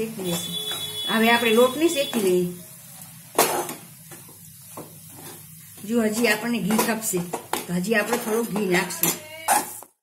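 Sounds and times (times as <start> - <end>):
metal spoon scraping metal pan: 6.1 - 9.9.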